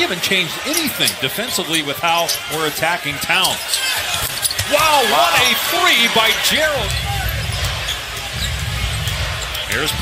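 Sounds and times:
arena crowd noise: 0:00.0 - 0:10.0
sneaker squeaks: 0:00.7 - 0:04.8, 0:06.9 - 0:10.0.

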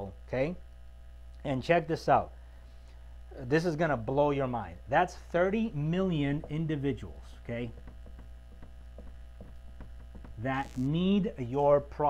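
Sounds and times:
electrical mains hum: 0:00.0 - 0:12.0
marker ticking on whiteboard: 0:06.3 - 0:11.0.

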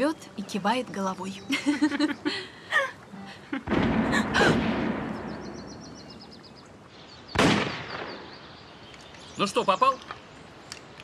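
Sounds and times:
shotgun shots echoing: 0:03.6 - 0:06.0, 0:07.3 - 0:08.4.

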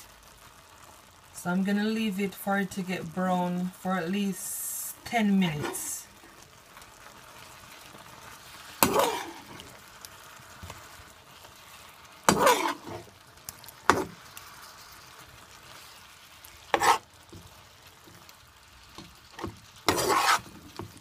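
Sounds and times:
meat sizzling in oil: 0:00.0 - 0:21.0
metal spatula scraping a pot: 0:08.7 - 0:09.8, 0:11.6 - 0:13.1, 0:13.7 - 0:18.3, 0:18.9 - 0:21.0.

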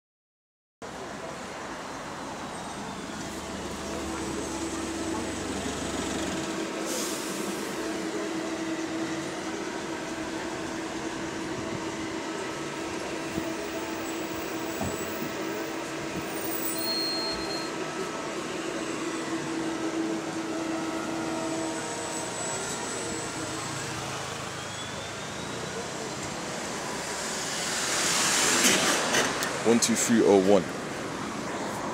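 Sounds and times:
passing road traffic: 0:00.8 - 0:31.9
bus pulling away with a whine: 0:00.9 - 0:31.9
diesel bus engine idling: 0:01.0 - 0:16.9, 0:17.7 - 0:27.7.

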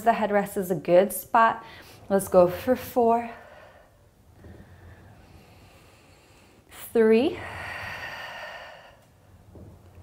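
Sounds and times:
woman's breathy exhale: 0:07.4 - 0:09.1.

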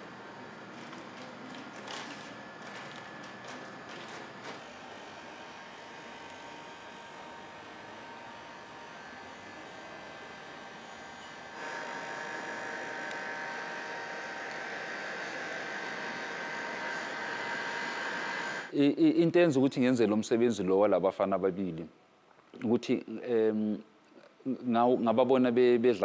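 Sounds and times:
whirring machine with high whine: 0:00.0 - 0:18.7.

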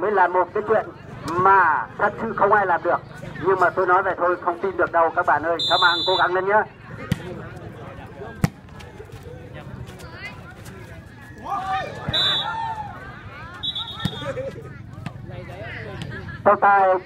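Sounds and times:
murmur of spectators: 0:00.0 - 0:17.0
spectators shouting: 0:11.4 - 0:14.4.

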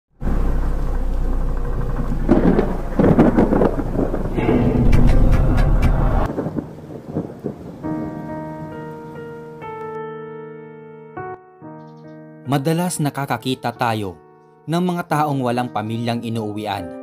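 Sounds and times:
thunder rumbling: 0:00.2 - 0:09.2
soft piano: 0:07.8 - 0:17.0.

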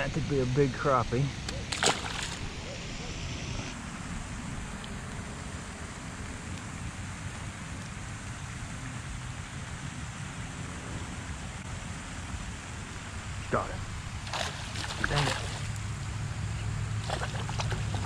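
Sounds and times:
water: 0:00.0 - 0:03.1, 0:03.7 - 0:18.0
wind: 0:00.0 - 0:18.0
fish splashing into water: 0:01.6 - 0:02.6, 0:14.2 - 0:15.8, 0:17.0 - 0:18.0.

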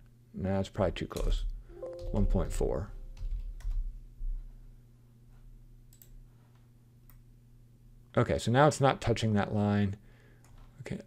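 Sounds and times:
low electrical hum: 0:00.0 - 0:11.0
computer mouse clicks: 0:05.9 - 0:06.2.

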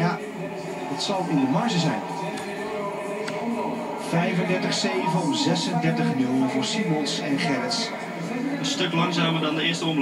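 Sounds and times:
indistinct voices: 0:00.0 - 0:10.0
music from television speaker: 0:00.0 - 0:10.0.

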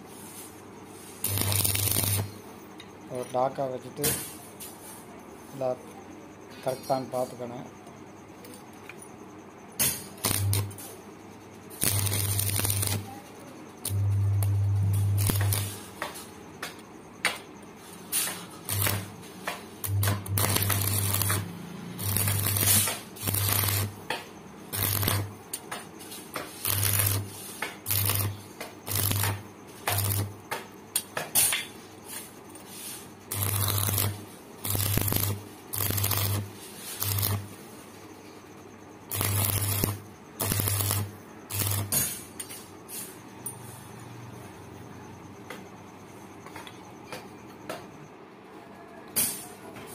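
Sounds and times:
electric arc welding buzz: 0:01.1 - 0:02.4, 0:09.8 - 0:10.9, 0:11.7 - 0:13.1, 0:13.8 - 0:16.0, 0:18.1 - 0:30.4, 0:32.9 - 0:37.6, 0:39.1 - 0:42.2.

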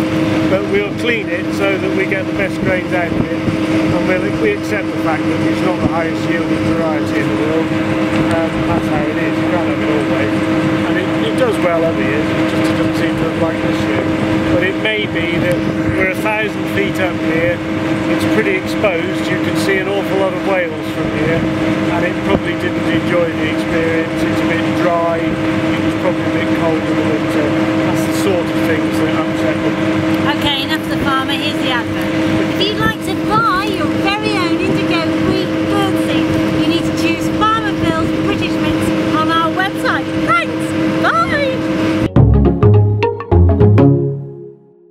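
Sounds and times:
wind buffeting microphone: 0:00.0 - 0:42.0
steady hum: 0:00.0 - 0:42.6
voice: 0:00.5 - 0:41.6
music with percussive notes: 0:42.1 - 0:44.7.

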